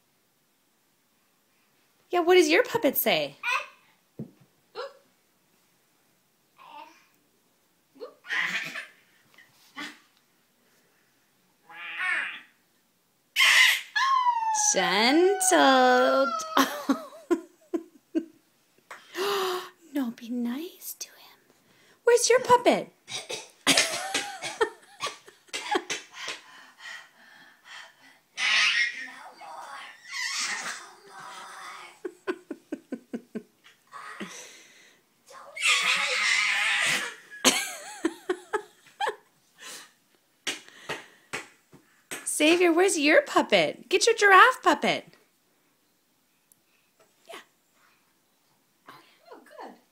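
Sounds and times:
toddler laughing and squealing: 8.0 - 9.0, 13.4 - 17.0, 28.4 - 32.2, 35.4 - 37.3
person giggling: 16.0 - 18.4, 32.0 - 34.4, 37.4 - 39.3
breathy voice sound: 19.0 - 19.9.

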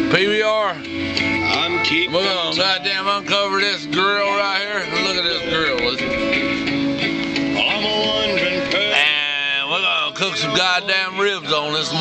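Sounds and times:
song with guitar and singing: 0.8 - 12.0.

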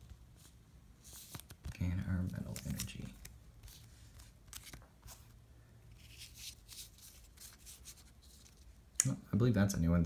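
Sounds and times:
trading cards swishing: 6.0 - 8.7.

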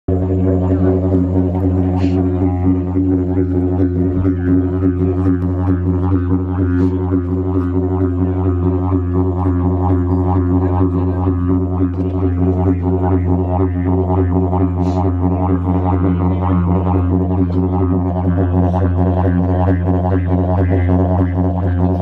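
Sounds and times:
didgeridoo drone: 0.0 - 22.0.

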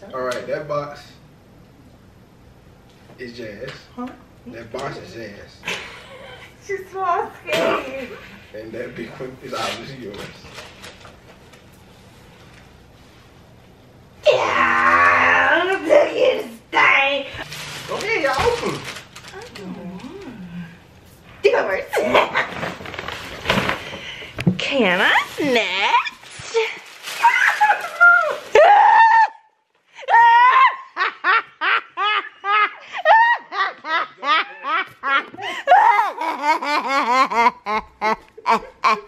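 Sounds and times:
person crying out excitedly: 14.2 - 16.1, 27.2 - 31.1, 35.5 - 36.4
high-pitched laughter: 30.1 - 39.0.

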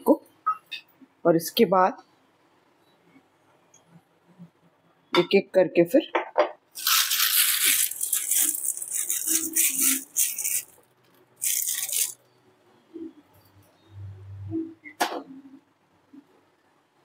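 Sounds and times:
plastic piping bag crinkling: 6.8 - 12.2.

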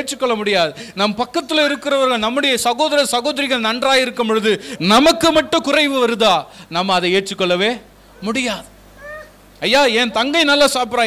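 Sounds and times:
man speaking: 0.0 - 8.7, 9.6 - 11.0
faint high-pitched call: 9.0 - 9.4.

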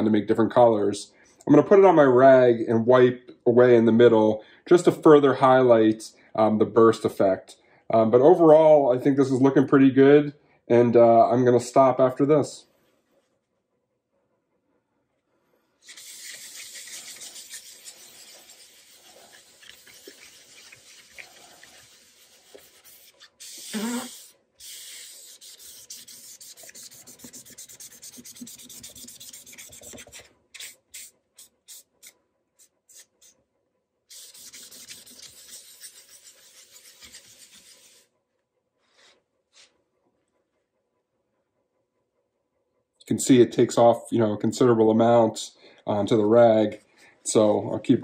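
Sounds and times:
rag rubbing on wood: 15.8 - 33.3, 34.1 - 38.1.

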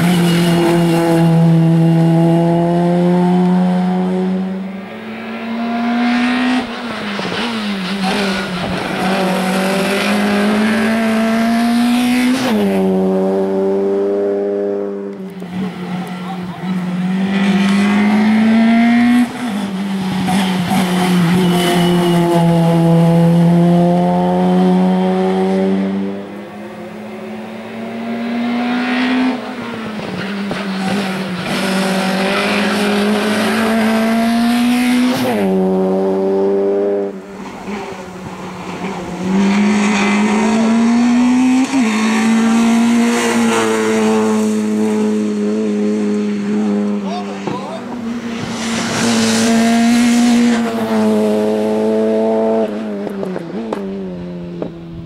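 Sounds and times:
race car engine revving: 0.0 - 54.8.

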